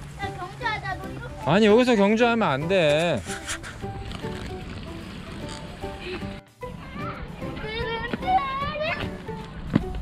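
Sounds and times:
background music: 0.0s - 10.0s
child shouting: 6.8s - 9.1s.

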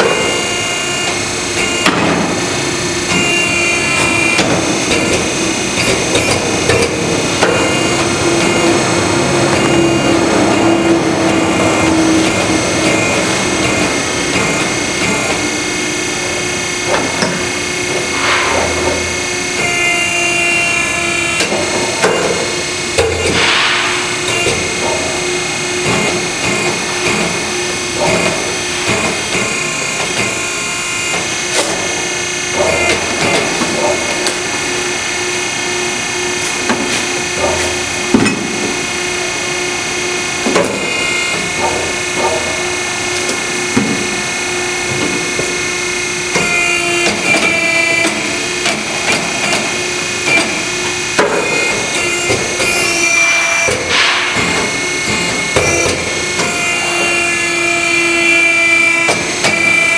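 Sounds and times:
tire-cutting machine humming: 0.0s - 59.9s.

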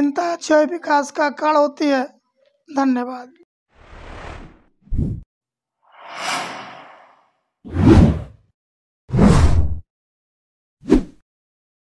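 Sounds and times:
whoosh sound effects: 6.0s - 8.1s.

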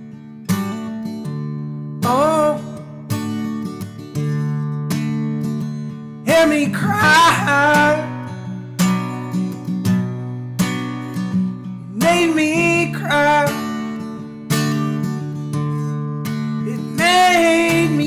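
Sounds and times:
acoustic guitar strumming chords: 0.0s - 18.0s
man singing: 2.0s - 3.1s, 6.2s - 8.4s, 11.9s - 14.2s, 16.5s - 18.0s.

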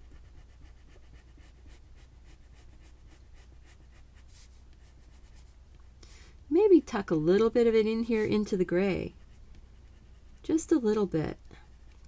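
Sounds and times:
pencil scratching on paper: 0.0s - 5.6s, 6.7s - 12.0s.

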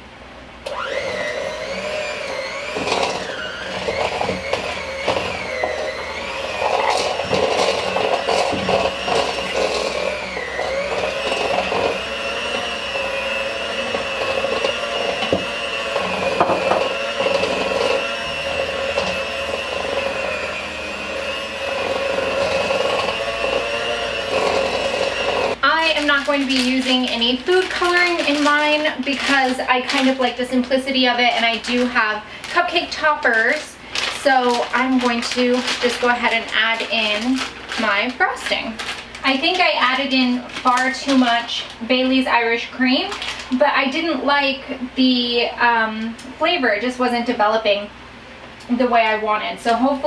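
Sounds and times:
electric hand mixer whining: 0.6s - 44.3s.

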